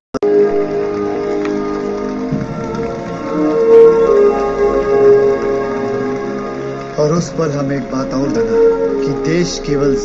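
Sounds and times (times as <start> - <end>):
ambient music of long held notes: 0.2 - 10.0.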